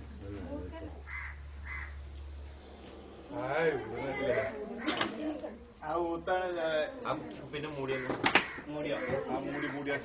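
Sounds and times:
harsh bird caws: 1.1 - 2.0, 4.3 - 5.1, 7.9 - 10.0.

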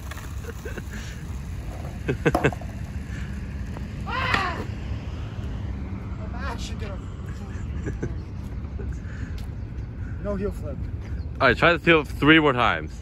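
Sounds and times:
low outdoor rumble: 0.0 - 13.0.

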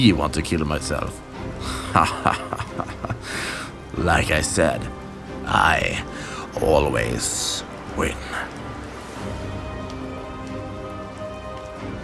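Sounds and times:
ambient music sustained tones: 0.0 - 12.0
steady rain: 0.0 - 12.0.

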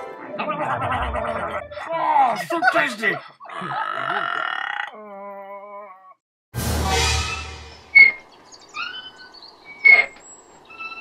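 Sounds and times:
man making gargling noise: 3.5 - 5.1
music: 6.6 - 8.0.

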